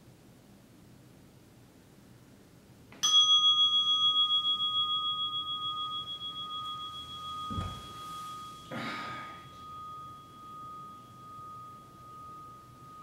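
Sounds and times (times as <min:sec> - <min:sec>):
meditation bell ringing: 0:03.0 - 0:13.0
soft thump: 0:07.5 - 0:08.0.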